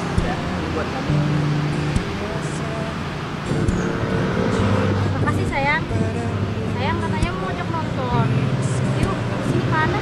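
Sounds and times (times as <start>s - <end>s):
road traffic hum: 0.0s - 10.0s
vehicle engine running: 0.0s - 10.0s.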